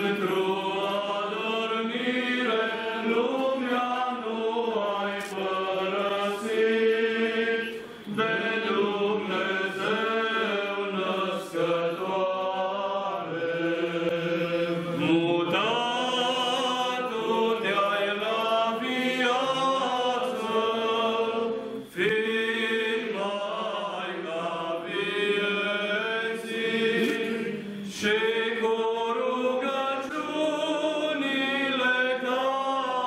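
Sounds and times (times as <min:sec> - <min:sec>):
group chanting unaccompanied: 0:00.0 - 0:33.0.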